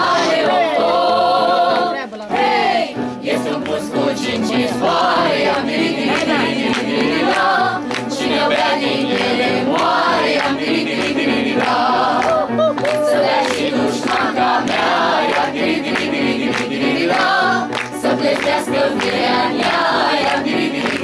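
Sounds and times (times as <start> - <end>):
mixed choir singing folk song: 0.0 - 21.0.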